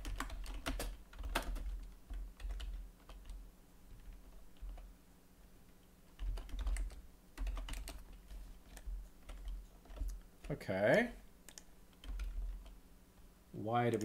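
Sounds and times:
typing on computer keyboard: 0.0s - 4.9s, 6.1s - 10.6s, 11.5s - 12.8s.

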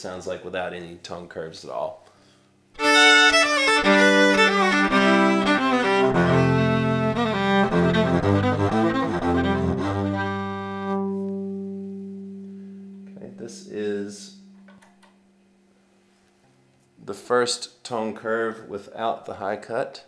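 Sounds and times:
bowed electric violin: 2.8s - 15.0s.

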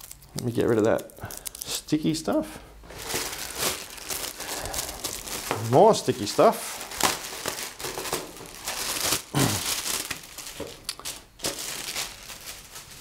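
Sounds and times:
plastic wrapping crinkling: 0.0s - 13.0s.

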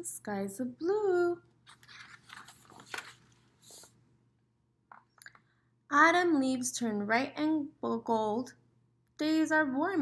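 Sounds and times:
paper pages rustling: 1.6s - 4.0s.

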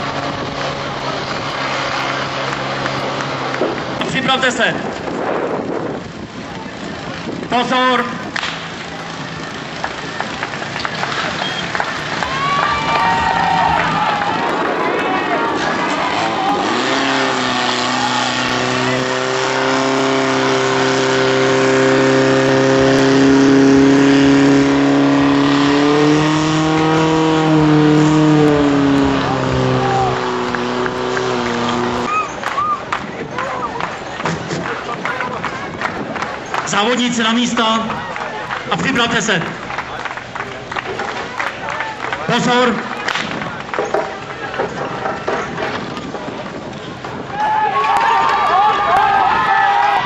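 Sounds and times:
fire pump engine running: 0.0s - 50.0s
spectators shouting: 11.3s - 19.4s, 28.5s - 36.4s, 47.2s - 50.0s.

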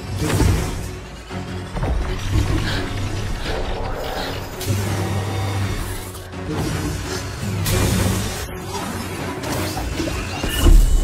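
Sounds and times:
film score music: 0.0s - 11.0s.

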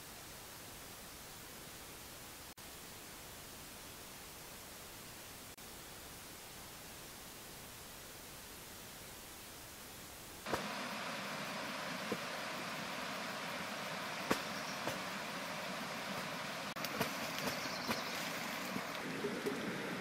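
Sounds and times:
rushing outdoor background noise: 0.0s - 20.0s.

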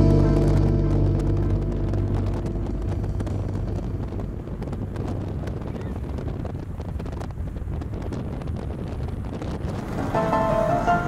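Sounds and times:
car road noise: 0.0s - 11.0s
wind buffeting microphone: 0.0s - 11.0s.

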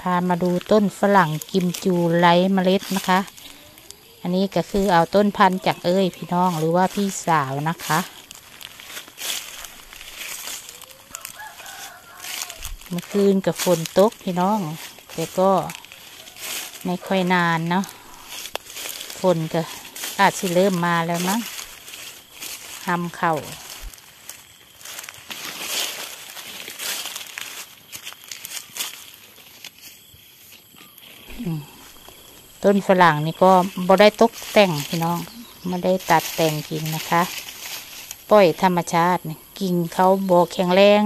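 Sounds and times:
dry leaves rustling: 0.0s - 41.0s
rooster crowing faintly: 9.5s - 13.7s, 14.7s - 18.4s.

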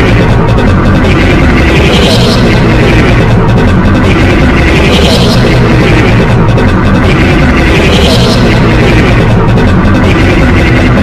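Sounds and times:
processed cartoon soundtrack cacophony: 0.0s - 11.0s.

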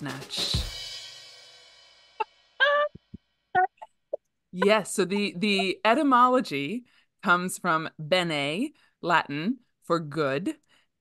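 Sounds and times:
excited high-pitched squeals: 2.6s - 3.9s.

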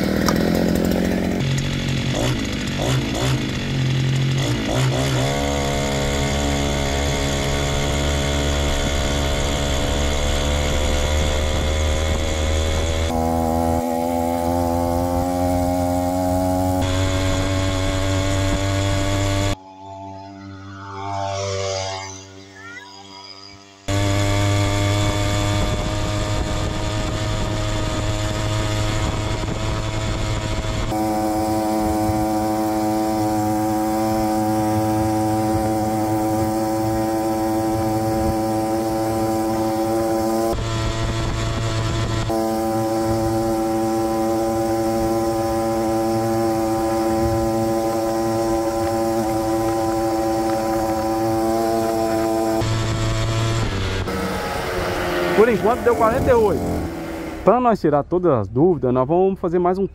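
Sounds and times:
two-stroke engine at full throttle: 0.0s - 57.7s.

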